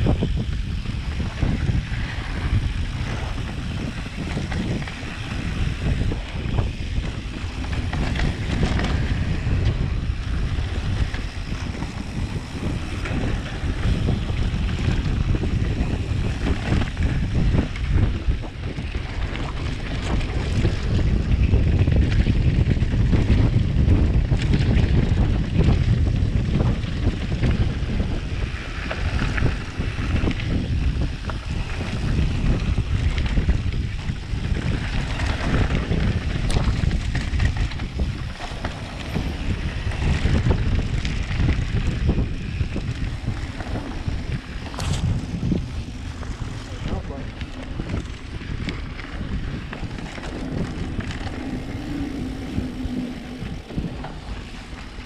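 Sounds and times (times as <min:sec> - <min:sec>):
bike tyres rumbling on dirt: 0:00.0 - 0:55.0
wind buffeting microphone: 0:00.0 - 0:55.0.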